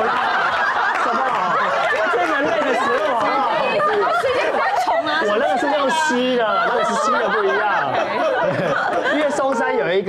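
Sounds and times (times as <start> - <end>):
people talking over one another: 0.2 - 10.0.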